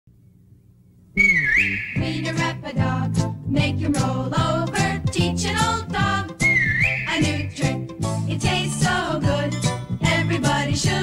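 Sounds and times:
gliding whistle: 1.2 - 2.2, 6.4 - 7.3.

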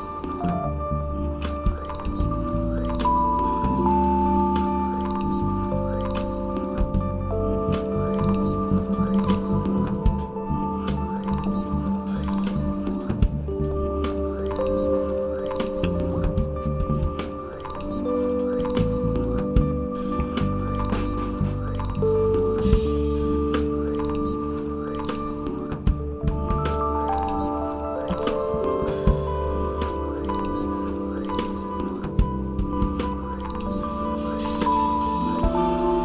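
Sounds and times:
drums: 0.0 - 36.0
held chord notes: 0.0 - 36.0
pulsing bass: 0.4 - 14.6, 15.8 - 17.5, 18.8 - 24.8, 25.5 - 36.0.

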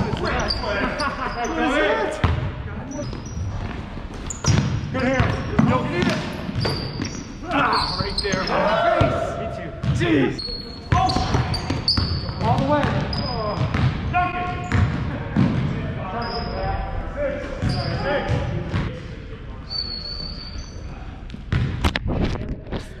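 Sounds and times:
sneakers squeaking: 0.0 - 16.8, 17.4 - 18.9, 19.6 - 21.8
basketball bouncing: 4.4 - 7.2, 10.9 - 14.0, 14.6 - 15.7.

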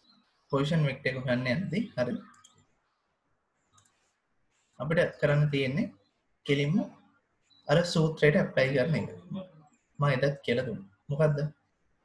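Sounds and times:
man speaking: 0.5 - 2.3, 4.8 - 7.0, 7.7 - 11.6
faint click: 3.7 - 4.0.

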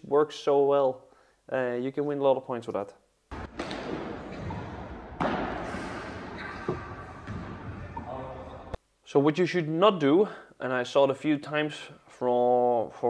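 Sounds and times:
ball striking rackets and walls: 3.3 - 8.8.

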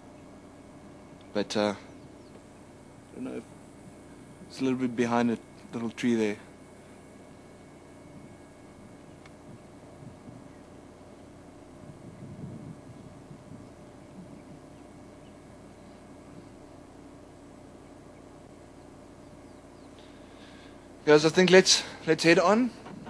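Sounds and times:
faint bird chirps: 0.0 - 3.5, 12.0 - 16.8, 17.4 - 20.8
steady low hum: 0.0 - 23.0.

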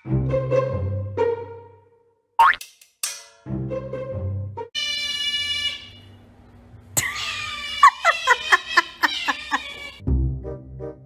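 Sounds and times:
otter shrill cry: 4.8 - 6.2, 7.0 - 10.0.

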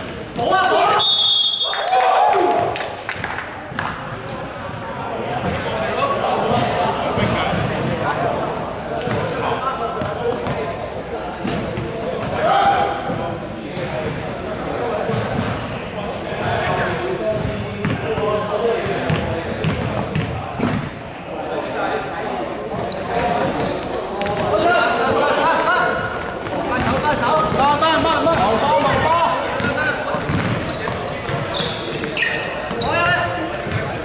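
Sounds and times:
sneakers squeaking: 0.0 - 1.9, 3.7 - 21.0, 22.7 - 34.0
basketball bouncing on wooden court: 17.3 - 18.0, 19.1 - 20.9, 26.8 - 32.1, 33.5 - 34.0.

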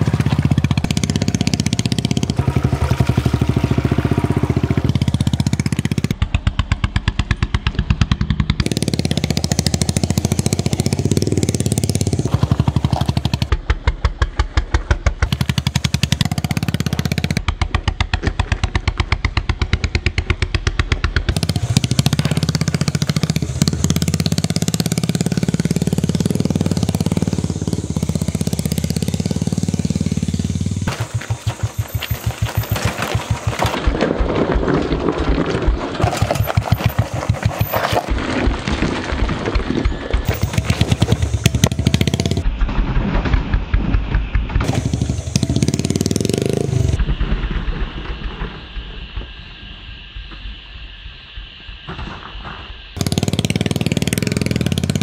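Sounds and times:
motorcycle engine thumping: 0.0 - 37.6, 38.2 - 49.4.

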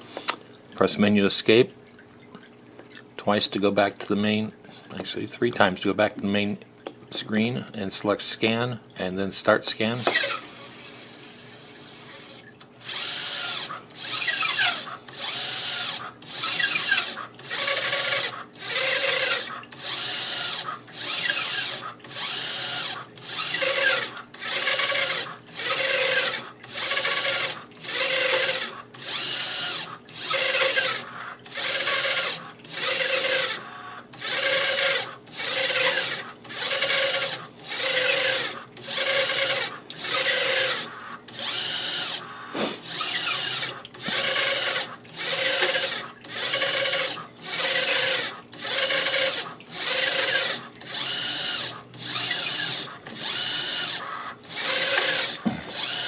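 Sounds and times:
drive motor running in short strokes: 10.0 - 11.1, 11.9 - 56.0.

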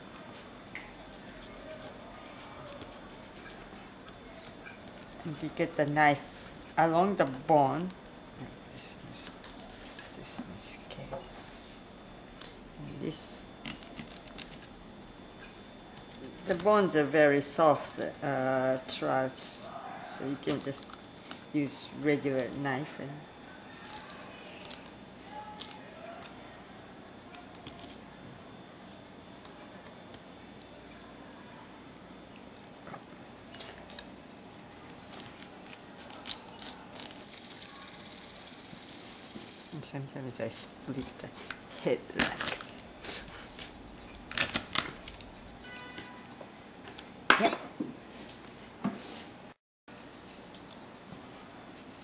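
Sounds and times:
knife cutting fish head: 1.3 - 3.7
knife clicking through fish bones: 35.1 - 37.4.

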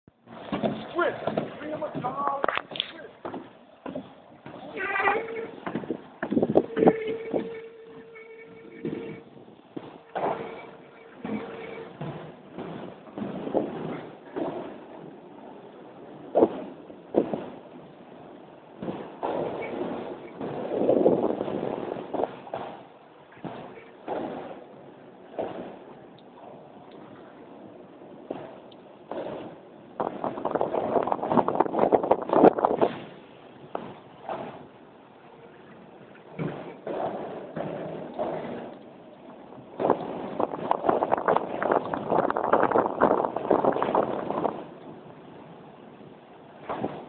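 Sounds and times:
skate wheels rolling on concrete: 0.0 - 47.0
steady background noise: 0.1 - 47.0.

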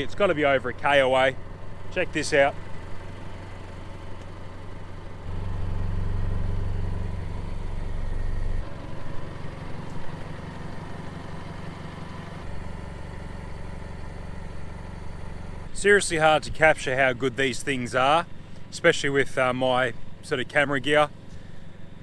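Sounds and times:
car engine idling: 0.0 - 22.0.

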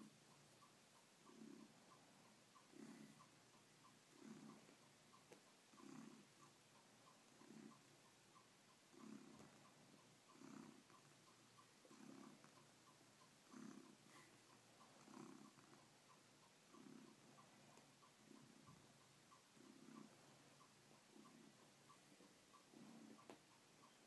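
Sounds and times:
cat purring: 0.0 - 24.0.

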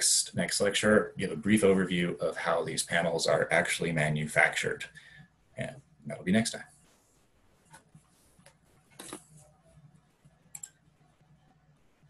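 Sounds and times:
faint low hum: 0.0 - 12.0
computer mouse clicks: 10.4 - 10.8.

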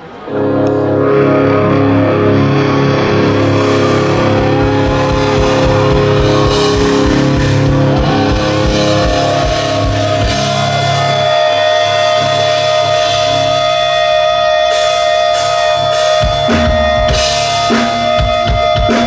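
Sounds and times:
distorted electric guitars: 0.0 - 19.0
bass guitar: 0.3 - 19.0
drums: 1.8 - 19.0.

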